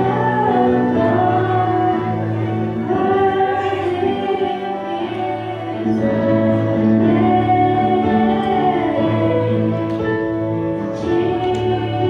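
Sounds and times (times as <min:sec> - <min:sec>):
women singing a duet: 0:00.0 - 0:12.0.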